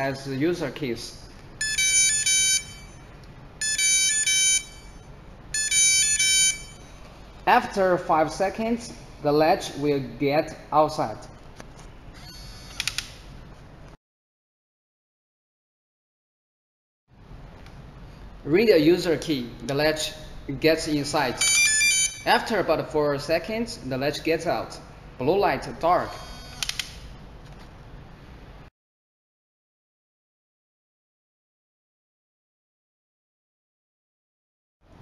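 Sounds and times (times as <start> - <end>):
lock motor whine and clicks: 12.1 - 13.2, 26.2 - 27.1
faint motor whine: 24.8 - 28.6.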